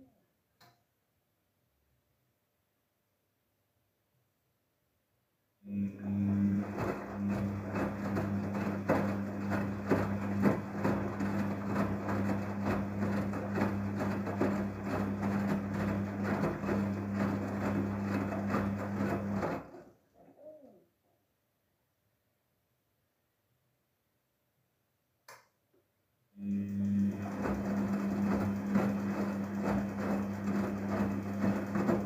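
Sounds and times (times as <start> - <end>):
washing machine motor hum: 5.7 - 19.9, 26.4 - 32.0
wet laundry tumbling and knocking: 6.2 - 19.9, 27.0 - 32.0.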